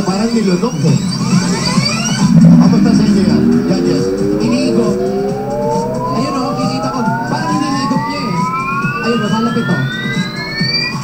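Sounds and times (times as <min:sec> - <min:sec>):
rising electronic tone: 0:00.0 - 0:11.0
background voices: 0:00.1 - 0:10.0.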